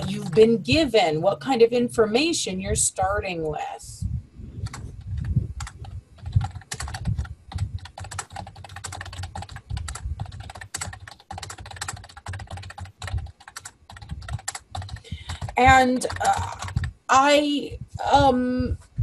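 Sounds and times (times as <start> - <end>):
computer keyboard typing: 0.0 - 1.1, 4.6 - 17.3.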